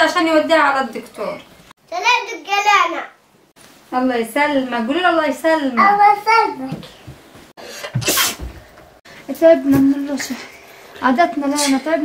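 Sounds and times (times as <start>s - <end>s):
child sneezing: 7.8s - 8.5s.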